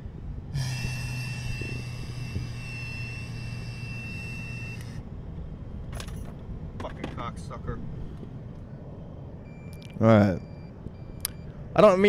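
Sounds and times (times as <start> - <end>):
car cabin road noise: 0.0 - 12.0
low hum: 0.0 - 12.0
steady high tone: 0.5 - 5.0
person blowing into breathalyzer: 0.6 - 4.8.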